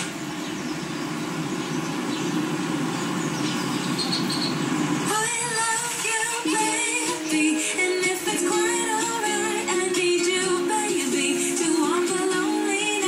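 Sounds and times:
tv static hiss and buzz: 0.0 - 13.0
music with singing: 5.0 - 13.0.

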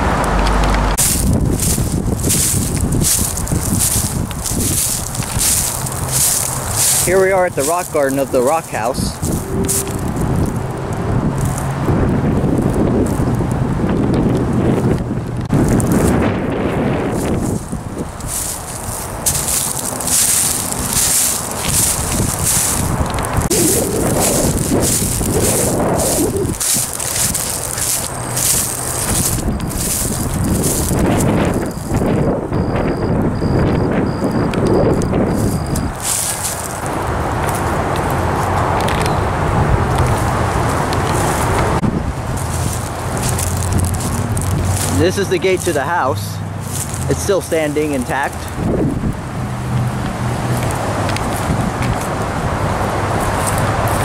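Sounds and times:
wind buffeting microphone: 0.0 - 54.0
footsteps crunching dry grass: 1.0 - 32.2, 34.8 - 39.1, 39.8 - 52.4, 53.1 - 54.0
faint high-pitched beep: 32.5 - 34.5.

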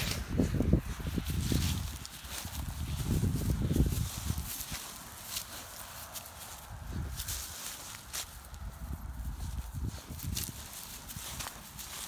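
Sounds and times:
footsteps crunching dry grass: 0.0 - 12.0.

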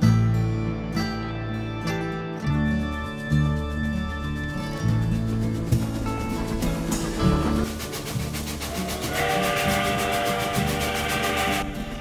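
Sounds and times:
background music: 0.0 - 12.0
locomotive whistle: 8.6 - 12.0.

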